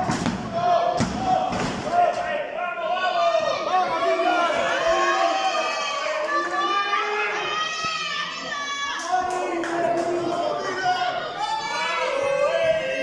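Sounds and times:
spectators shouting: 0.0s - 13.0s.

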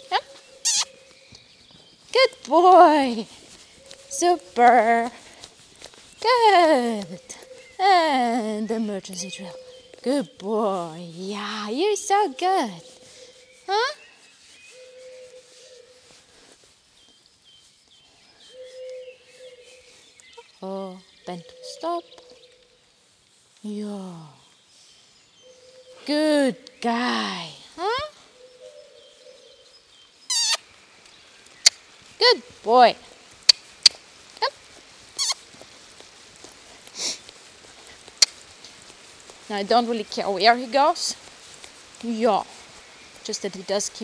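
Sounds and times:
small birds chirping: 0.0s - 44.0s
person kissing and clucking: 0.6s - 0.9s, 30.3s - 30.6s, 38.2s - 38.4s
squeak: 30.3s - 30.6s
breathy hiss: 32.9s - 43.8s.

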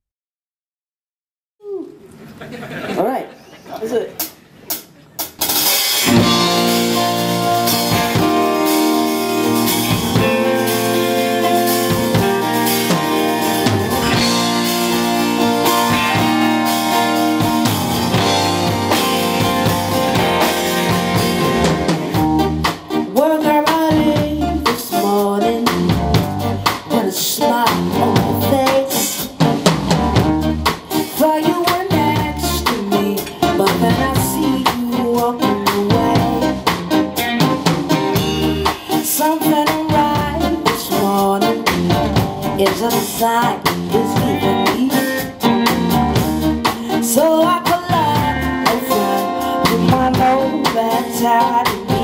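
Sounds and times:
live rock band playing: 4.2s - 52.0s
woman singing lead vocal: 23.0s - 29.4s, 31.0s - 36.7s, 38.6s - 45.6s, 46.6s - 52.0s.

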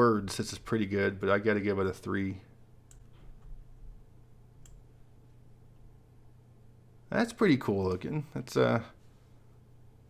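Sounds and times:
steady low hum: 0.0s - 10.0s
computer mouse clicks: 2.9s - 3.6s, 4.6s - 4.8s.

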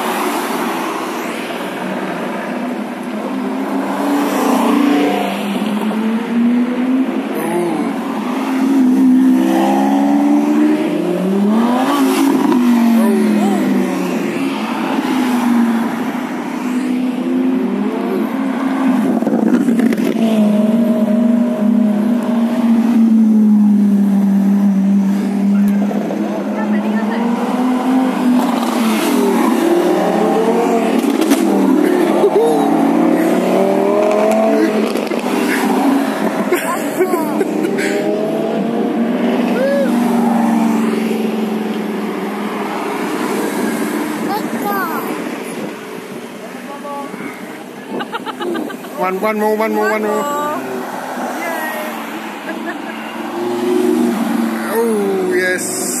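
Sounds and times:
car engines revving and accelerating: 0.0s - 56.0s.

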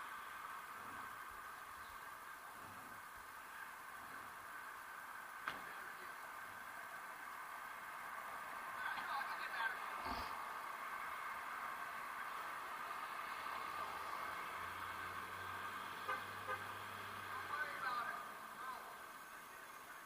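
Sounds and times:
car engine passing: 0.0s - 19.9s
city street traffic: 0.0s - 20.0s
faint voices talking: 17.2s - 20.0s.

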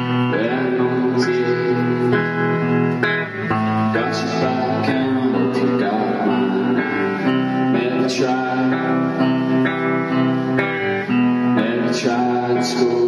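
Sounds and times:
live band with guitar: 0.0s - 13.0s.

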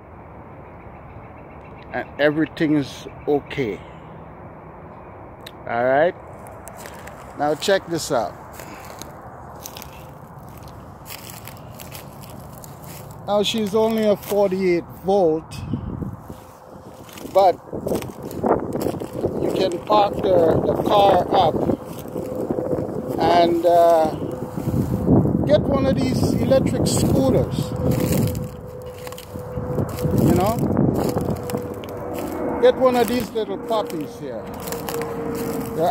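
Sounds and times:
footsteps on dry grass: 6.2s - 35.9s
wind rumbling on microphone: 6.2s - 35.9s.

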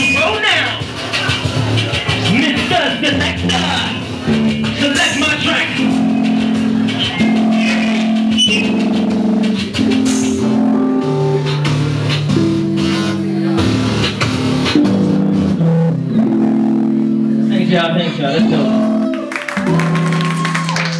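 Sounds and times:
steady drum beat: 0.0s - 16.7s
held low synth notes: 0.0s - 20.4s.

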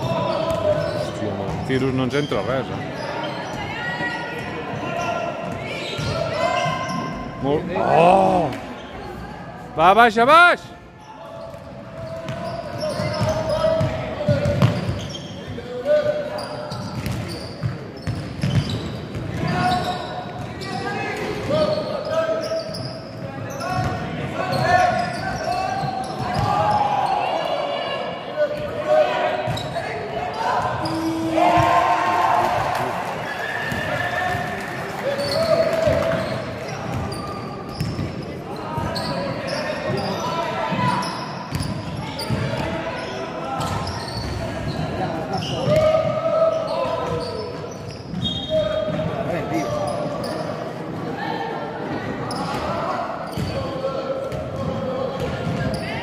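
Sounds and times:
players and spectators shouting: 2.9s - 11.2s, 23.5s - 37.4s, 42.0s - 47.5s.

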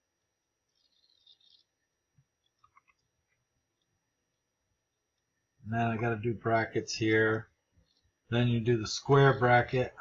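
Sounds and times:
faint high-pitched patter: 0.6s - 4.0s.

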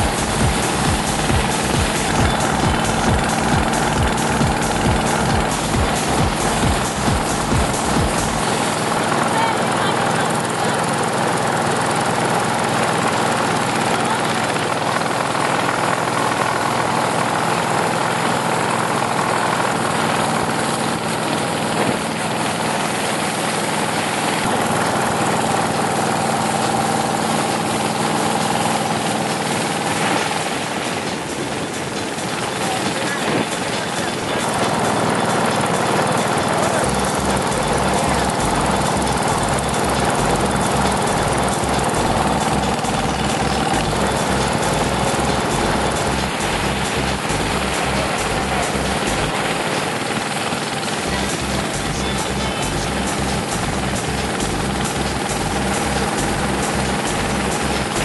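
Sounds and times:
motorboat engine running: 0.0s - 58.0s.

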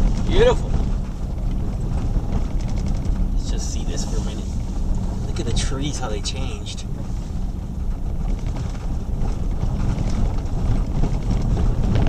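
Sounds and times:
gravel clicking under tyres: 0.0s - 12.0s
tyres and drivetrain rumble: 0.0s - 12.0s.

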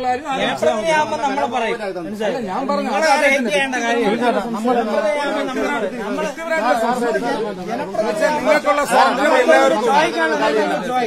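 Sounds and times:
men arguing: 0.0s - 11.0s.

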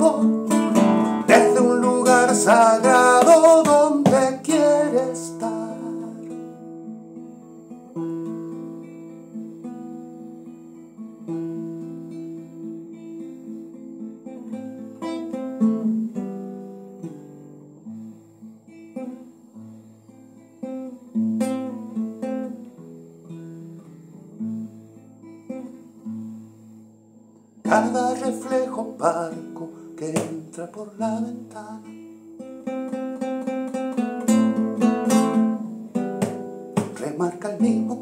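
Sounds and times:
classical guitar playing: 0.0s - 38.0s
strummed guitar strokes: 0.0s - 38.0s.

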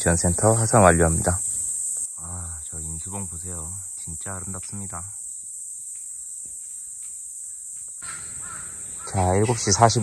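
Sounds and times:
bird calling: 0.0s - 10.0s
insects chirring: 0.0s - 10.0s.

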